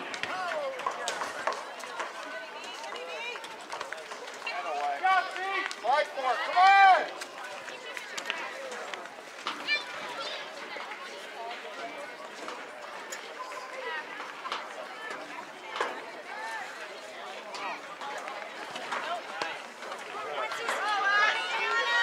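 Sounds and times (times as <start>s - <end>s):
players and spectators shouting: 4.4s - 7.2s, 19.1s - 22.0s.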